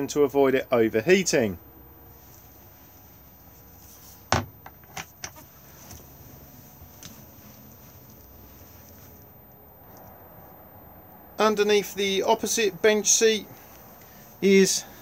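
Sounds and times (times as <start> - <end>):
faint background hum: 0.0 - 15.0.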